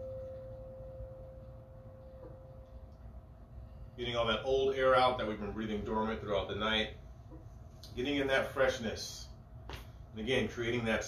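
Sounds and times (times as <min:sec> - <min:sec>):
singing bowl ringing: 0:00.0 - 0:04.0.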